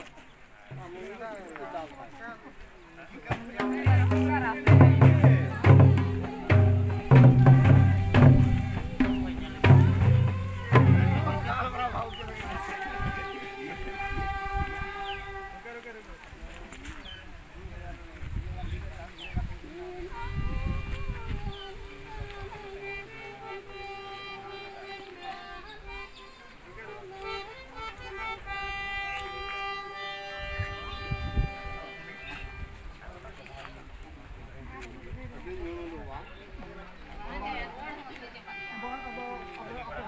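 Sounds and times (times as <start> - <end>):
low drum beats: 0.7 - 1.2, 3.3 - 15.6
harmonium chord: 22.8 - 32.6, 38.5 - 40.0.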